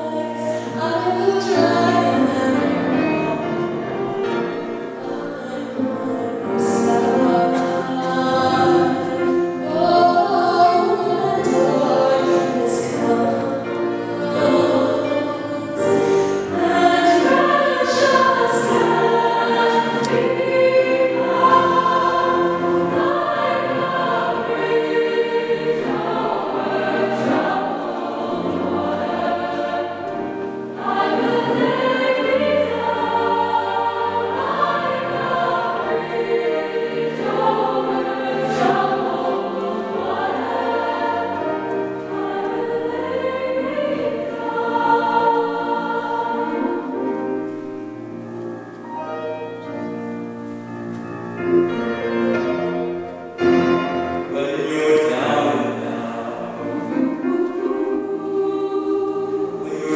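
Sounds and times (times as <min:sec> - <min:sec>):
youth choir singing: 0:00.0 - 0:50.1, 0:51.4 - 0:59.9
piano accompaniment: 0:00.0 - 0:59.9.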